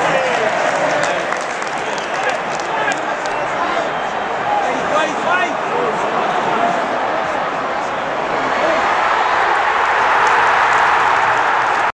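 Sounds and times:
stadium crowd cheering and clapping: 0:00.0 - 0:11.9.

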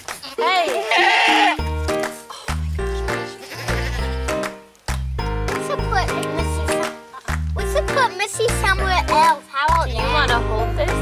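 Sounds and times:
background music: 0:00.0 - 0:11.0
goat bleating: 0:00.3 - 0:01.6, 0:03.3 - 0:04.2.

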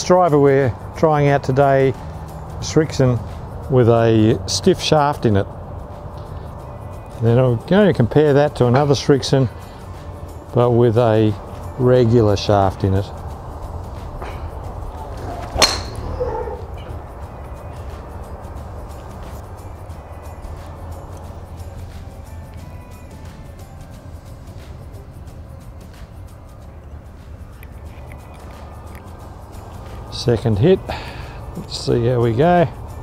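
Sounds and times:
background music: 0:00.0 - 0:33.0
golf club striking ball: 0:13.7 - 0:17.0.

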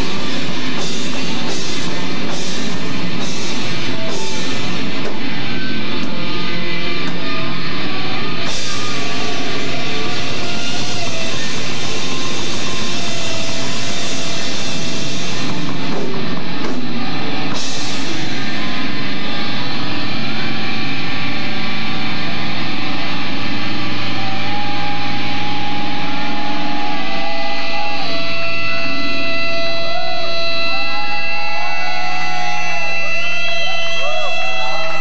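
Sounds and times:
bending guitar tones: 0:00.0 - 0:35.0
electric guitar feedback: 0:00.0 - 0:35.0.

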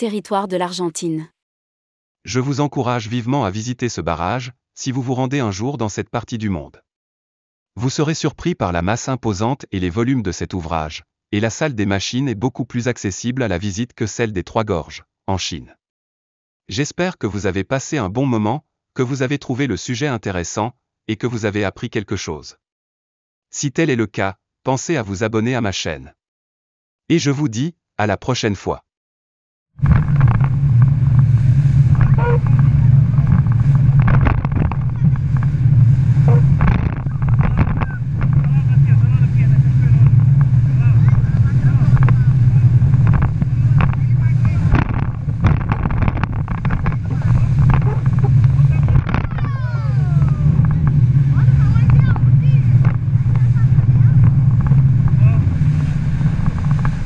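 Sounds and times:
boat engines droning: 0:29.8 - 0:57.0
water rushing: 0:29.8 - 0:57.0
passengers calling out: 0:49.3 - 0:52.7.

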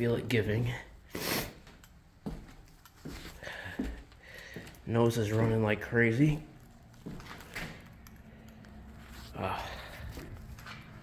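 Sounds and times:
sniff through a runny nose: 0:01.1 - 0:01.6.

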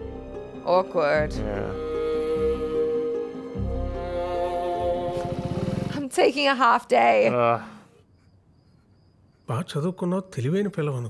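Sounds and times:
crickets chirping: 0:01.7 - 0:11.0
man speaking: 0:07.3 - 0:07.8, 0:09.5 - 0:11.0.

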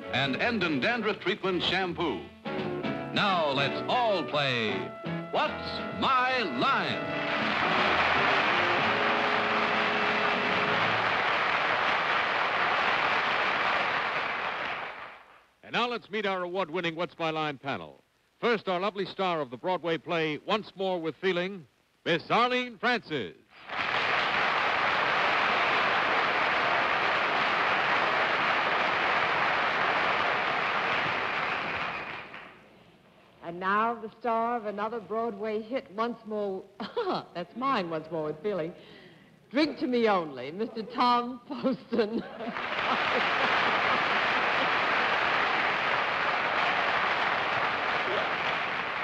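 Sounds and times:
audience applauding: 0:06.1 - 0:15.4, 0:23.6 - 0:32.6, 0:42.4 - 0:49.0.

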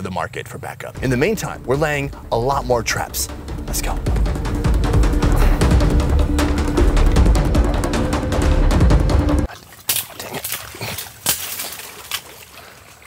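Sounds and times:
background music with drum beat: 0:01.0 - 0:09.5
feet squelching in mud: 0:09.5 - 0:13.0.

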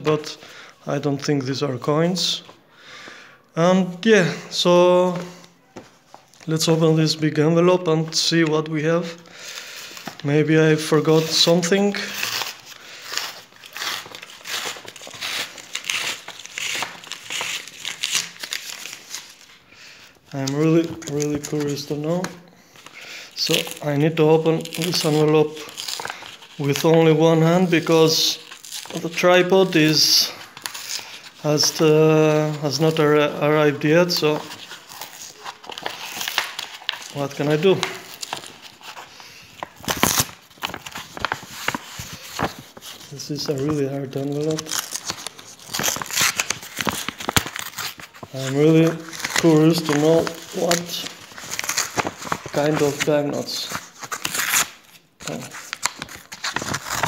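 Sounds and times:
stiff paper crinkling: 0:08.0 - 0:57.0
paper envelope tearing: 0:09.6 - 0:19.6, 0:23.3 - 0:57.0.

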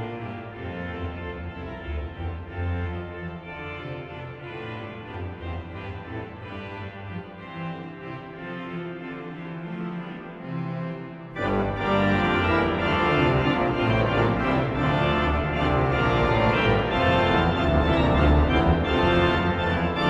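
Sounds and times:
pipe organ playing chords: 0:00.0 - 0:20.0
deep organ pedal bass: 0:07.6 - 0:20.0.

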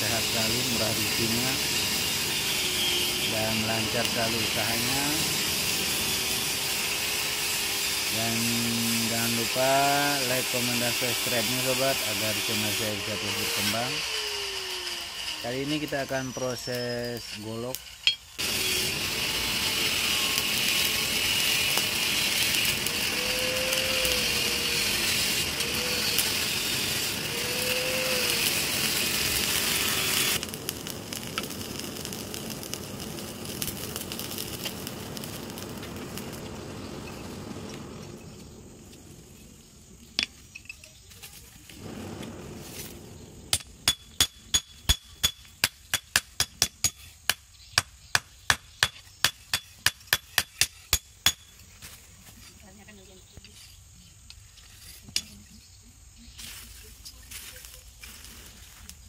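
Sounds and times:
forge air blower rushing: 0:00.0 - 0:17.8, 0:18.4 - 0:39.8, 0:41.7 - 0:44.0
sharp metallic clinks: 0:18.0 - 0:18.4.

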